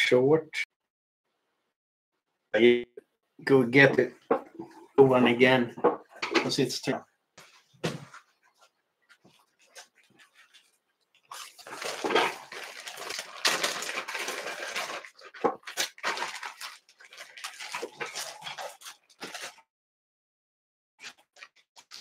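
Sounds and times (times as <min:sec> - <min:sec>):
packets rustling and crinkling: 0:07.5 - 0:19.6.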